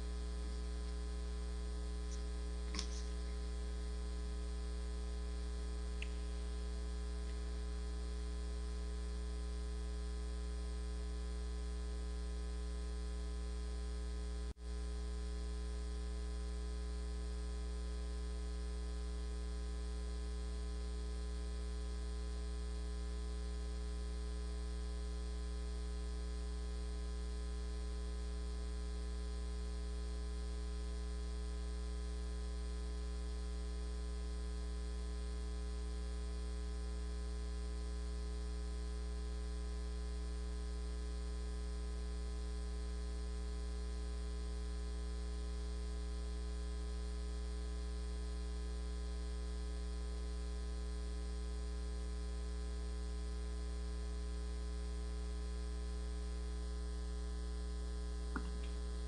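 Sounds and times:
electrical mains hum: 0:00.0 - 0:17.6, 0:54.0 - 0:59.0.

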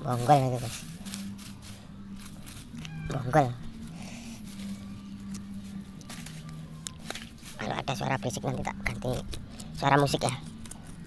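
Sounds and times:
man's voice: 0:00.0 - 0:00.8
low background hum: 0:00.0 - 0:11.0.

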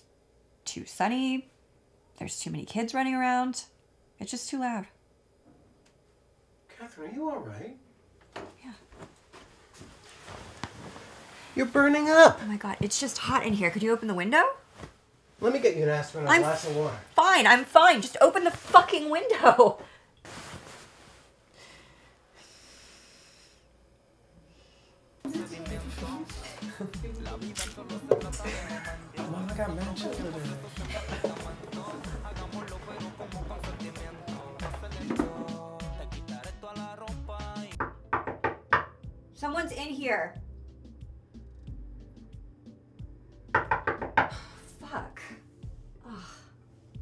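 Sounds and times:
faint breathing: 0:21.5 - 0:23.8, 0:24.4 - 0:25.0
knocks on a door: 0:37.8 - 0:39.0, 0:43.5 - 0:44.3.

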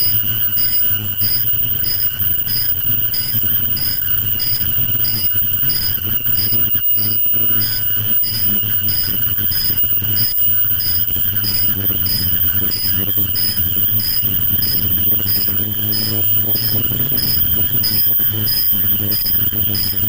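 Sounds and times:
high-pitched machine chirp: 0:00.0 - 0:20.0
machine humming and whining: 0:00.0 - 0:20.0.

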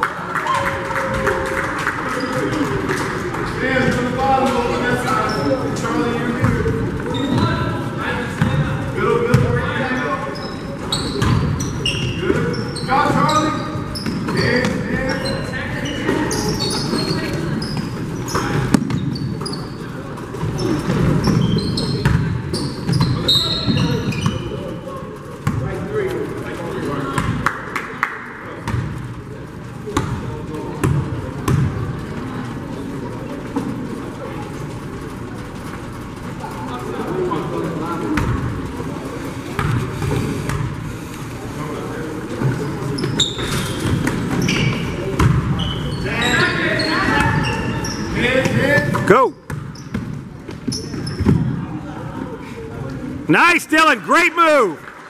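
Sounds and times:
chatter and calls echoing: 0:00.0 - 0:55.0
sneakers squeaking: 0:00.4 - 0:27.4, 0:28.6 - 0:53.0
basketball bouncing: 0:09.3 - 0:09.6, 0:11.1 - 0:11.7, 0:18.3 - 0:19.2, 0:22.0 - 0:24.4, 0:30.0 - 0:31.9, 0:39.6 - 0:40.7, 0:43.8 - 0:45.6.

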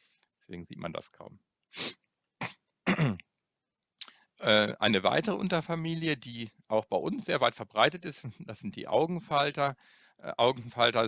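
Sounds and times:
man clearing his throat: 0:02.4 - 0:03.3.

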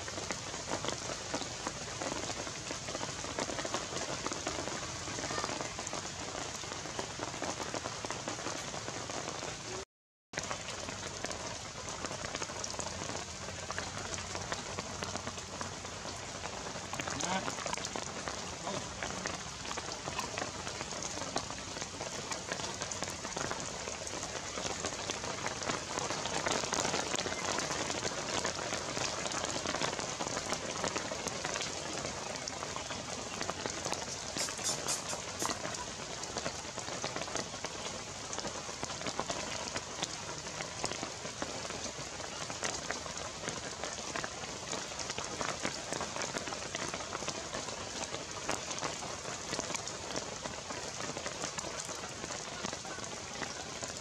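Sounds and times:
steady rain falling: 0:00.0 - 0:54.0.

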